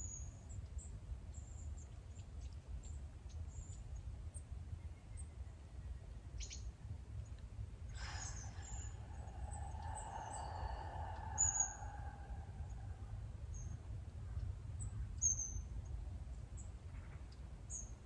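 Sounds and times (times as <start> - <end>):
steady low rumble: 6.8 - 17.7
long slow breath: 7.9 - 13.4
small birds chirping: 8.0 - 16.0.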